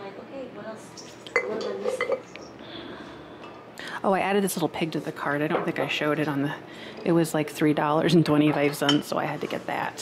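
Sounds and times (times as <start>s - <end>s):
ceramic and glass clinking: 1.3s - 2.3s.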